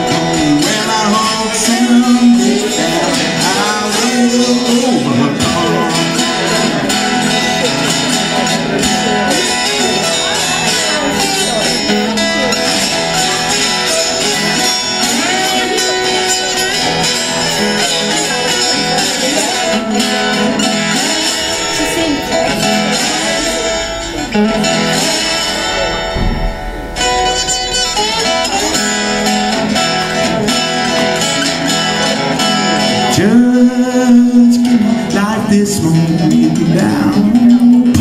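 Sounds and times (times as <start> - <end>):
slide acoustic guitar blues: 0.0 - 38.0.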